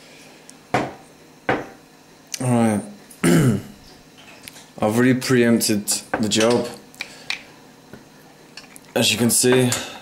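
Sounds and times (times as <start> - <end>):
man clearing his throat: 3.2 - 3.8.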